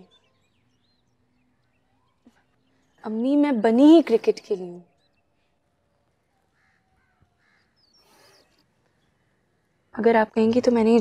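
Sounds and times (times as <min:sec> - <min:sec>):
faint crow caws: 0:06.0 - 0:10.0.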